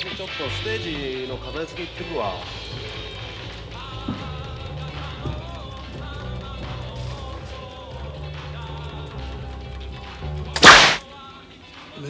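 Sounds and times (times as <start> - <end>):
bass string snapping: 10.6 - 11.0.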